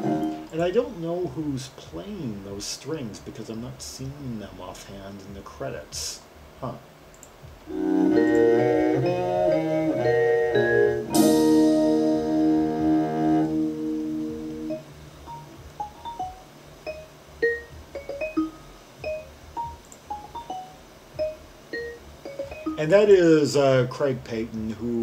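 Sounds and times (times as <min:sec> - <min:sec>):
jazz-rock ensemble chords: 0:00.0 - 0:00.5, 0:07.5 - 0:22.9
vibraphone notes: 0:07.7 - 0:23.0.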